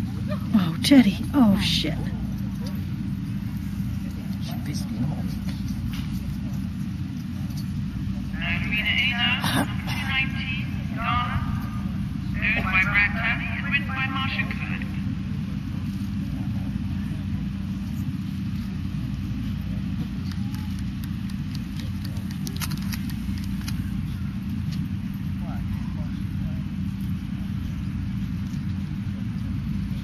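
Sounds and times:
steady low rumble: 0:00.0 - 0:30.0.

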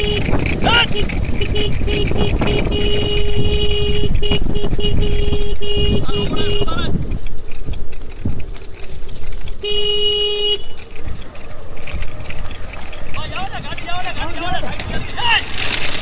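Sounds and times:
vehicle horn: 0:00.0 - 0:06.9, 0:09.6 - 0:10.9
moving vehicle rumble: 0:00.0 - 0:16.0
wind: 0:00.0 - 0:16.0
people shouting: 0:00.6 - 0:01.1.

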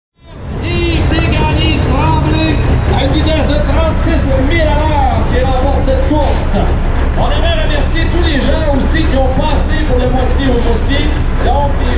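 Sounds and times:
diesel truck engine rumbling: 0:00.2 - 0:11.9
voice over loudspeaker: 0:00.2 - 0:11.9.

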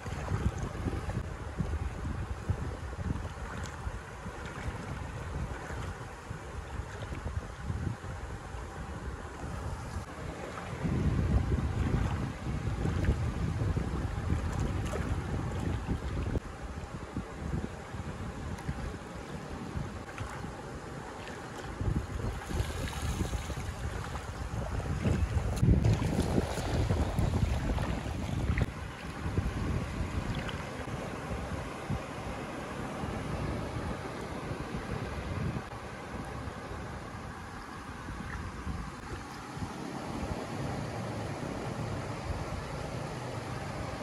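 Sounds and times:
wind buffeting microphone: 0:00.0 - 0:40.4
small waves in shallow water: 0:00.0 - 0:44.0.

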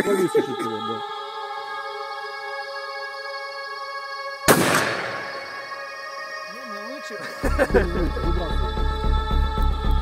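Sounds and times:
background music: 0:00.0 - 0:10.0
shotgun shot echoing: 0:04.5 - 0:05.6.

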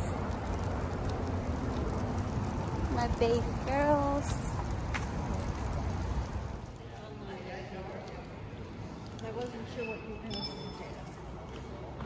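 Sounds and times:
stroller wheels rolling on asphalt: 0:00.0 - 0:09.6.

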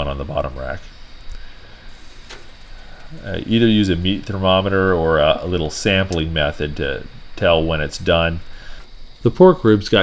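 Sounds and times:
low steady background noise: 0:00.0 - 0:10.0
sharp click: 0:06.1 - 0:06.3.

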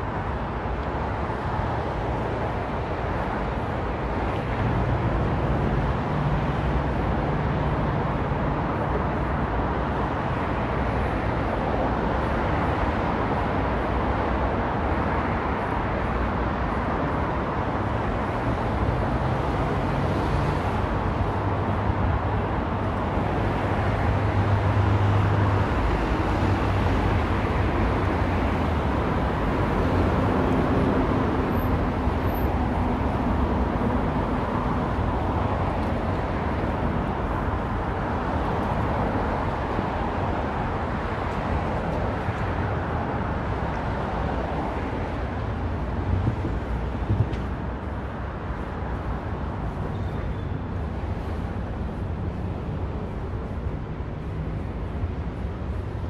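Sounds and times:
city street traffic: 0:00.0 - 0:56.0.

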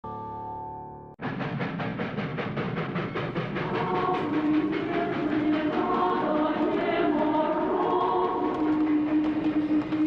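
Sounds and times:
steam locomotive chuffing: 0:01.2 - 0:10.0.

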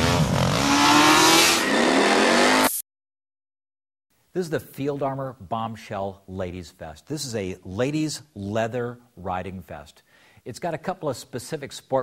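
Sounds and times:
engine revving: 0:00.0 - 0:02.8.

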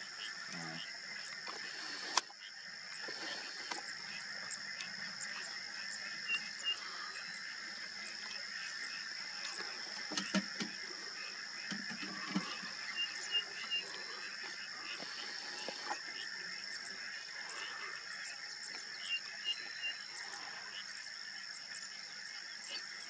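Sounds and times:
chorus of calling wild animals: 0:00.0 - 0:23.0
bird chirps: 0:04.1 - 0:14.3.

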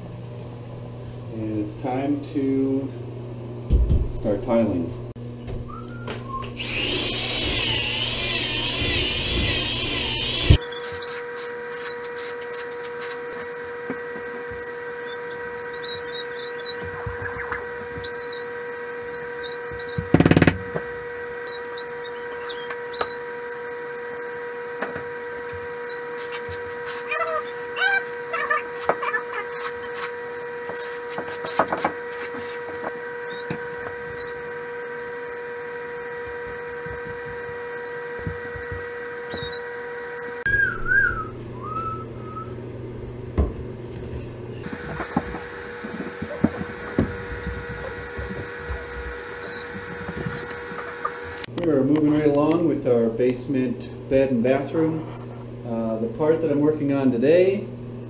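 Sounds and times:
steady hum: 0:00.0 - 0:58.0
drill with paddle mixer whirring: 0:06.4 - 0:40.5, 0:44.6 - 0:51.5.

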